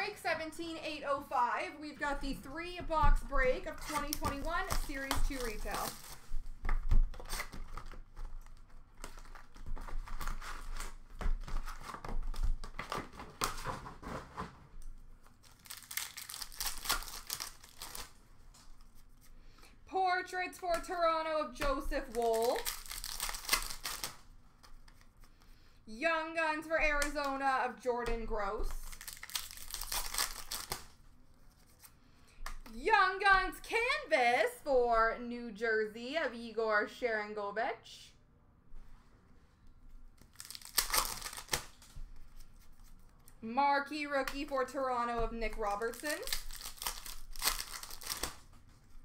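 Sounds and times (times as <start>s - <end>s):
wrapper crinkling: 3.7s - 13.7s, 15.2s - 19.2s, 21.9s - 25.3s, 28.7s - 31.9s, 40.2s - 43.4s, 45.5s - 49.0s
card packs torn open: 3.9s - 6.3s, 7.0s - 13.7s, 15.4s - 18.2s, 22.0s - 24.8s, 28.8s - 31.0s, 40.2s - 42.0s, 45.9s - 48.5s.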